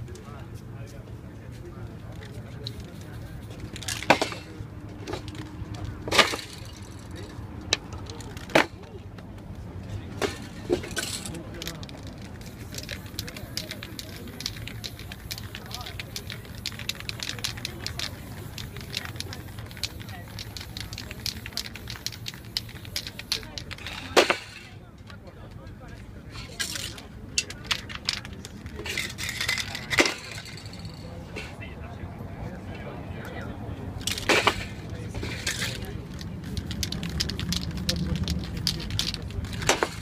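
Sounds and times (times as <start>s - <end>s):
fine crackling clicks: 11.6s - 23.9s, 34.0s - 40.0s
spray-paint can hissing: 12.3s - 24.2s.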